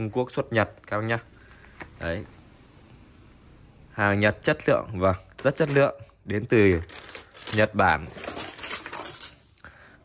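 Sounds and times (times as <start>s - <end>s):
steel hand tools clattering: 6.6s - 9.5s.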